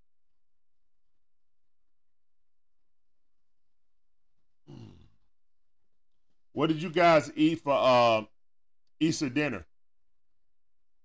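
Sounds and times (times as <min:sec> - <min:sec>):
man humming: 0:04.6 - 0:05.3.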